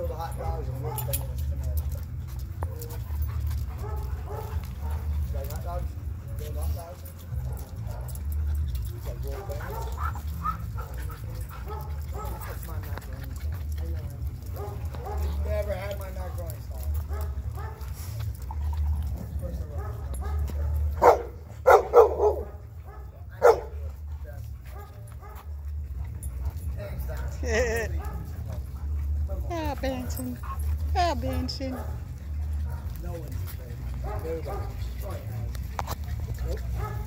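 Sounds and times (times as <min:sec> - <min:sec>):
dogs barking: 0:00.0 - 0:37.0.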